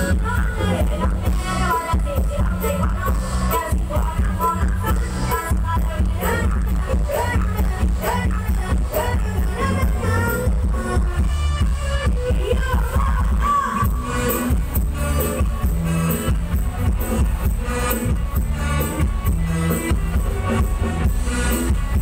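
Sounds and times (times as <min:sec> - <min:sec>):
bass-heavy music over loudspeakers: 0:00.0 - 0:22.0.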